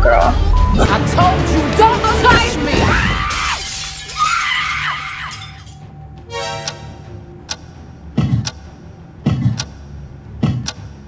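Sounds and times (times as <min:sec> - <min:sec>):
background music: 0:00.0 - 0:11.0
glass shattering crash: 0:03.2 - 0:05.8.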